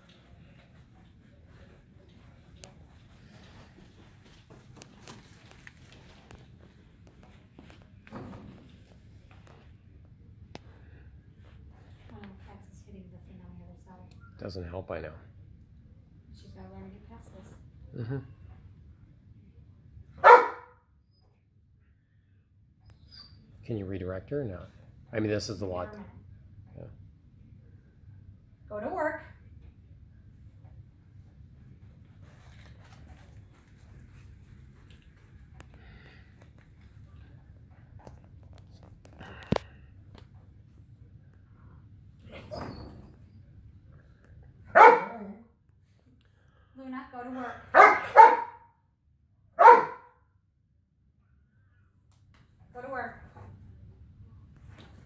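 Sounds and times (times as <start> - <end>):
dog barking: 20.2 - 20.8, 44.7 - 45.3, 47.7 - 48.7, 49.6 - 50.2.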